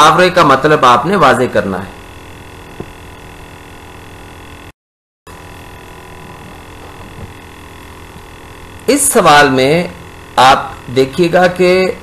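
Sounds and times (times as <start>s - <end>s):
electrical mains hum with hiss: 0.0s - 4.7s, 5.3s - 12.0s.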